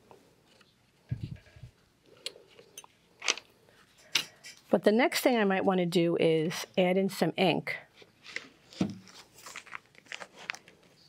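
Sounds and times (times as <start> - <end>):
paper page rustling: 8.2 - 11.0.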